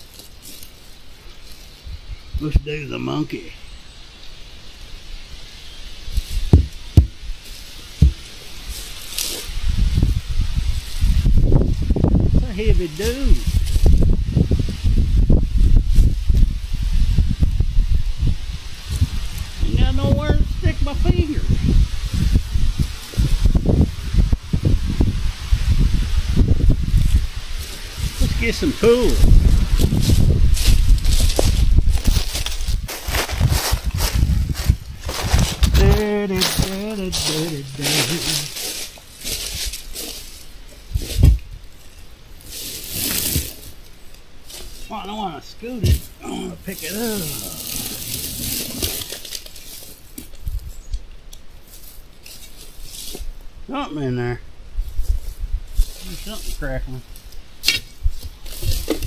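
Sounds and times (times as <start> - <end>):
brush crackling and rustling: 0.0 - 59.0
low thumps: 6.4 - 7.3, 8.0 - 8.4, 41.0 - 41.6, 45.8 - 46.3
short vocal sounds: 45.8 - 49.0
man groaning: 46.2 - 48.0.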